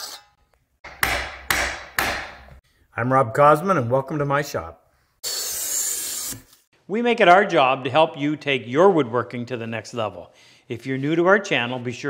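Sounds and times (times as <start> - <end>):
saw stroke: 5.2 - 6.7.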